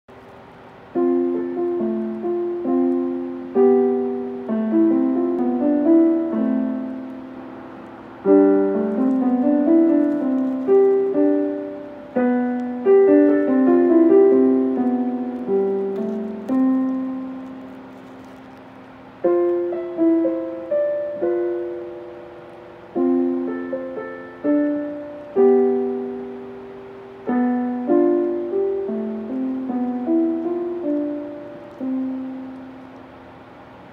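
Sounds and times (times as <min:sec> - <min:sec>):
slow piano piece: 0:00.1 - 0:33.9.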